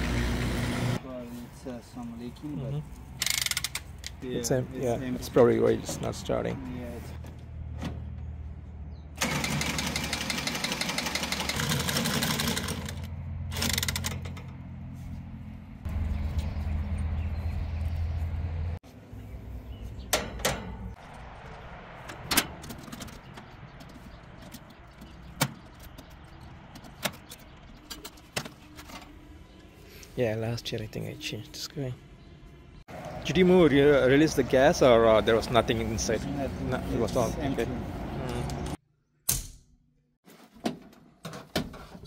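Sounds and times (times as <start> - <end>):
cordless power tool running: 0.0 - 1.0, 9.2 - 13.0
tools clicking and knocking: 3.2 - 4.2.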